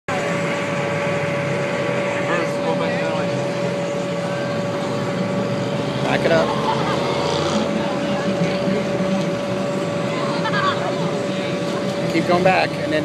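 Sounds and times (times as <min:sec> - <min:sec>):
crowd voices: 0:00.1 - 0:13.0
steady machine hum: 0:00.1 - 0:13.0.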